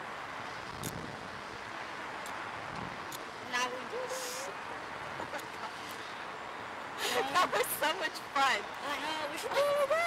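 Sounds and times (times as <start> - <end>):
wind rushing over microphone: 0.6 - 1.7.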